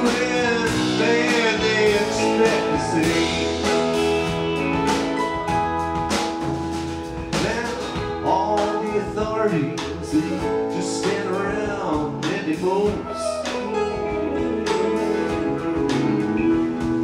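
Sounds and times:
drums: 0:00.0 - 0:17.0
lead line of bending notes: 0:00.0 - 0:17.0
sustained keyboard chords: 0:00.0 - 0:17.0.

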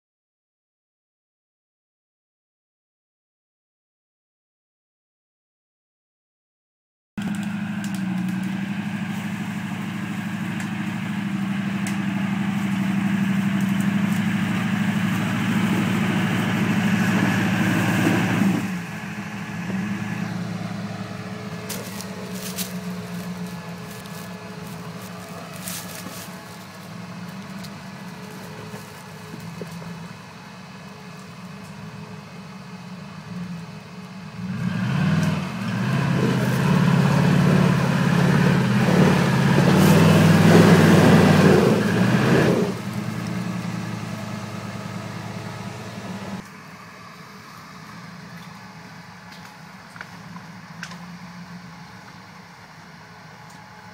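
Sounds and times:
vehicle engine working hard: 0:07.2 - 0:53.9.

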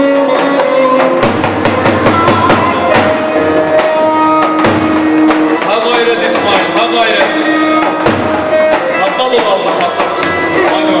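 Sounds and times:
amplified sliding melody: 0:00.0 - 0:11.0
bass drum beaten with a stick: 0:01.2 - 0:06.5.

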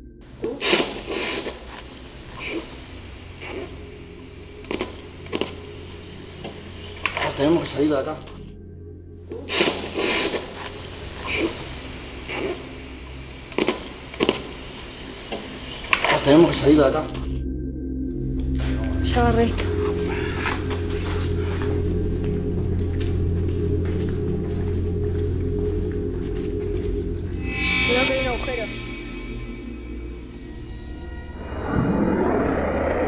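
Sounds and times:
high electronic whine: 0:00.0 - 0:08.6, 0:09.2 - 0:33.0
person speaking: 0:18.8 - 0:20.2, 0:27.8 - 0:28.9.

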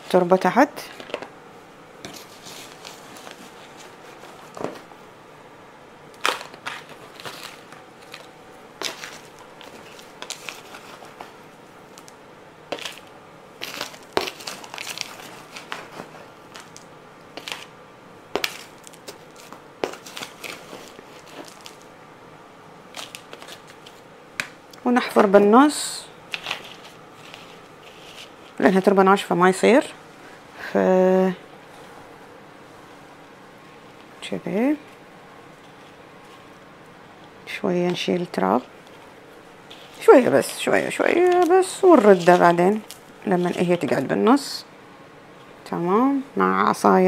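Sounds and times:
metal scoop scraping potting mix: 0:39.7 - 0:44.2.

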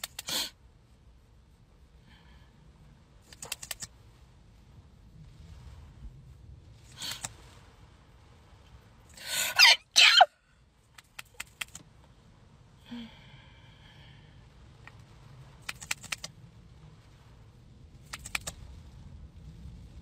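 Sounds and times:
person sneezing: 0:09.2 - 0:10.3.

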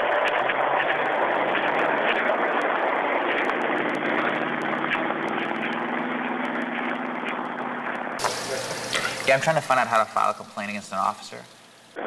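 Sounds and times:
engine drone: 0:00.0 - 0:12.0
broad hiss: 0:08.2 - 0:12.0.

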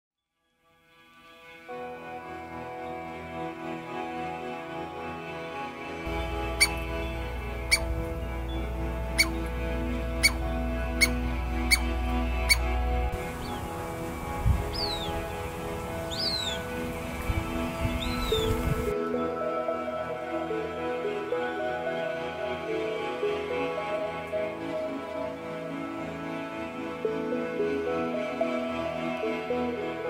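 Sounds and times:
gentle background music: 0:00.2 - 0:30.0
squirrel calling: 0:06.1 - 0:17.2, 0:17.8 - 0:18.9
high bird calls: 0:06.1 - 0:18.9.

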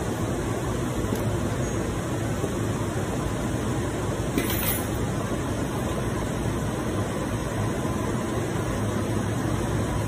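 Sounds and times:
rushing background noise: 0:00.0 - 0:10.0.

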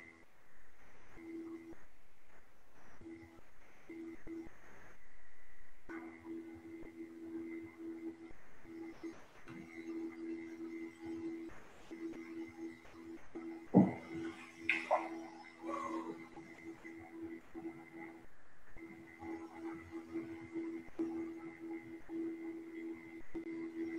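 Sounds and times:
faint background music: 0:00.0 - 0:23.9.

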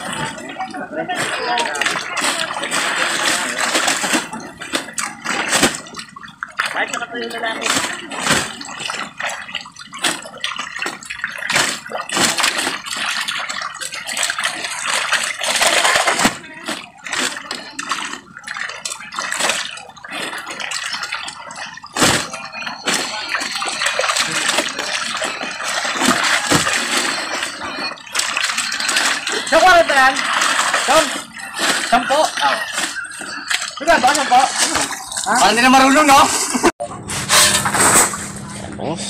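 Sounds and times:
fish slapping and knocking: 0:00.0 - 0:38.2
water splashing: 0:00.0 - 0:38.6.

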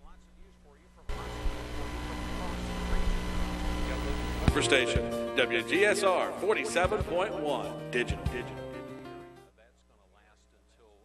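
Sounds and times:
faint voices: 0:00.0 - 0:04.8
steady hum and hiss: 0:00.0 - 0:04.9.

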